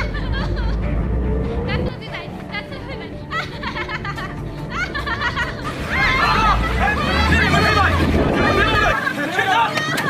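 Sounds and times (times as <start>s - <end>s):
van approaching: 0.0s - 9.8s
people talking over one another: 6.1s - 10.0s.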